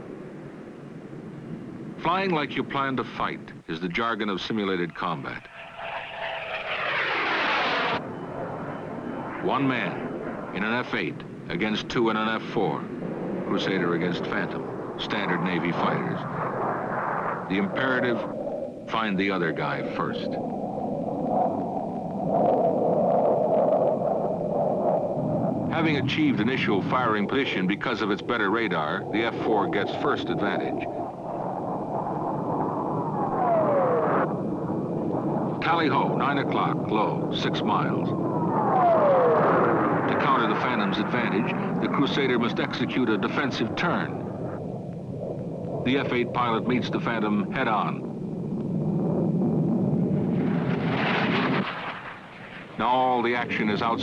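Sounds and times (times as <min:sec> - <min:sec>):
jet engine and rushing air roar: 0:00.0 - 0:54.0.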